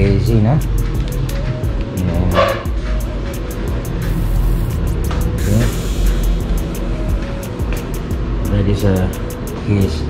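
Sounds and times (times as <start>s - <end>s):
background music with quick beat: 0.0s - 10.0s.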